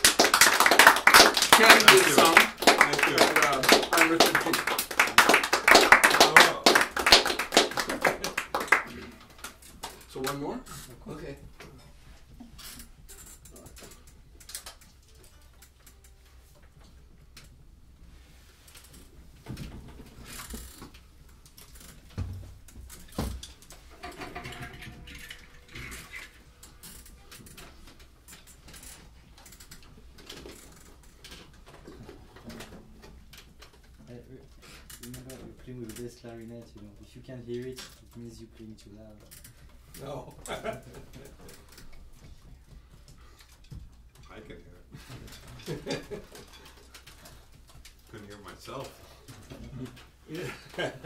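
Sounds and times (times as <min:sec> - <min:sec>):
instruments being handled: 0:22.9 - 0:33.9.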